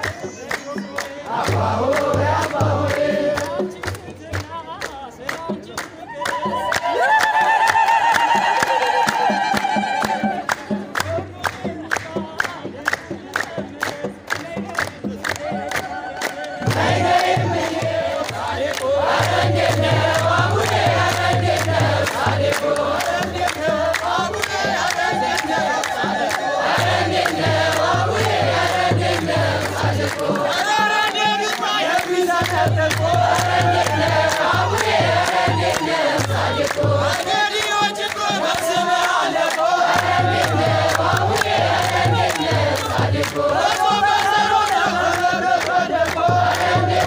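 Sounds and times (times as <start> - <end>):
crowd singing: 0.0 - 47.0
hand-clapping to a beat: 0.0 - 47.0
low pulsing beat: 16.6 - 30.7.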